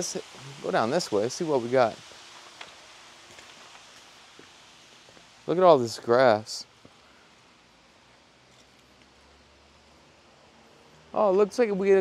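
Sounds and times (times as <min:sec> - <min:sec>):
faint footsteps: 0:02.0 - 0:05.4, 0:06.8 - 0:07.1.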